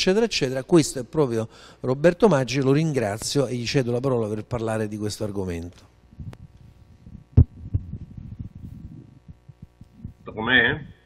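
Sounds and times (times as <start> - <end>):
faint electrical hum: 0.0 - 11.0
microphone handling bumps: 6.1 - 11.0.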